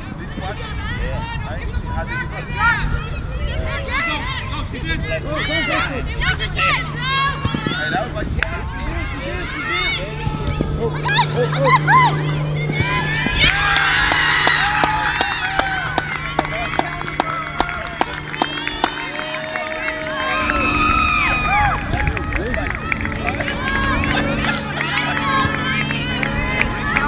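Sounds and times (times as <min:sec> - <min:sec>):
low hum: 0:00.0 - 0:27.0
spectators cheering and yelling: 0:00.0 - 0:27.0
scattered claps: 0:12.2 - 0:27.0.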